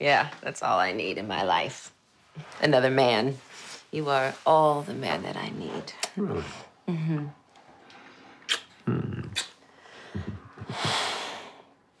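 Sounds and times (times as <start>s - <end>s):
long breathy exhale: 10.7s - 11.8s.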